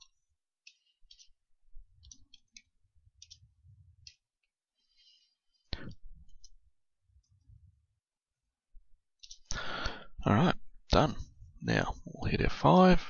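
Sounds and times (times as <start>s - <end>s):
keyboard keys clicking: 2.0s - 4.3s, 9.2s - 9.5s.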